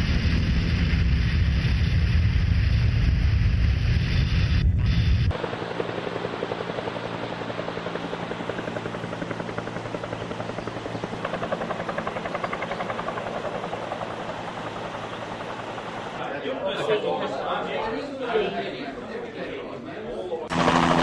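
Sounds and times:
helicopter rotor beating: 0.0s - 16.2s, 20.5s - 21.0s.

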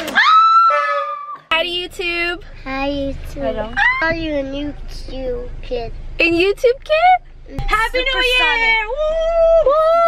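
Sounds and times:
low rumble: 1.5s - 10.0s
high-pitched wordless squeals: 3.5s - 4.9s.

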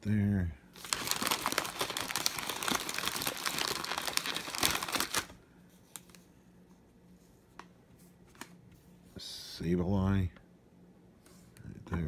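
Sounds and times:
plastic wrapper crinkling: 0.8s - 6.2s.

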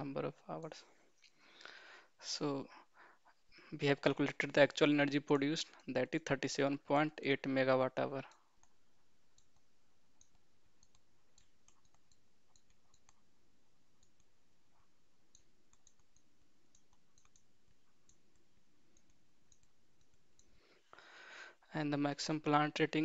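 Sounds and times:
low hiss: 0.0s - 23.0s
stylus clicking on a tablet: 8.2s - 20.8s.

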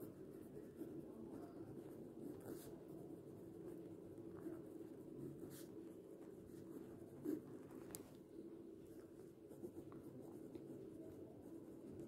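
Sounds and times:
pen scratching on paper: 0.0s - 7.6s, 9.0s - 12.0s.

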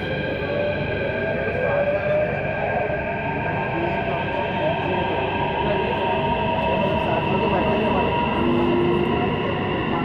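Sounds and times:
metro train rumble: 0.0s - 10.0s.

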